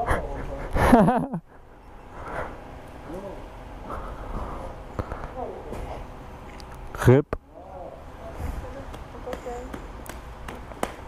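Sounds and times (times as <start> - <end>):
faint laughing: 0.0 - 2.6
low background hum: 0.0 - 11.0.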